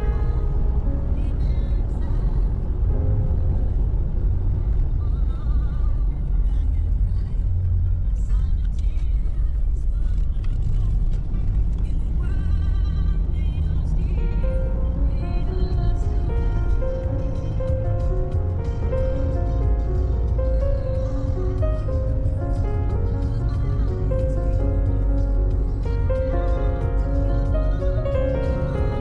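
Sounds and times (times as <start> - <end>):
car road and engine rumble: 0.0 - 29.0
music playing: 0.0 - 29.0.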